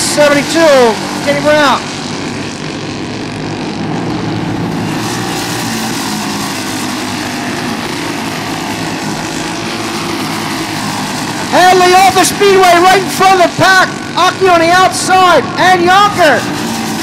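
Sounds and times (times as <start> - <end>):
kart engines racing: 0.0 - 17.0.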